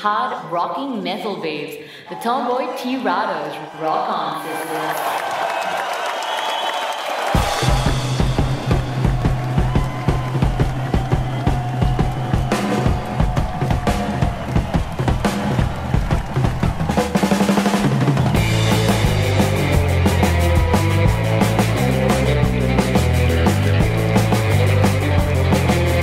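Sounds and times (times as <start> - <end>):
rock music with driving drums: 7.4 - 26.0.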